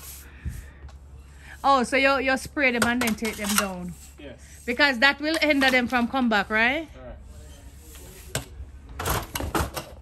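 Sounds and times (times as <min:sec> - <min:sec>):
brush scraping against wall: 0:00.0 - 0:06.6, 0:07.3 - 0:08.6.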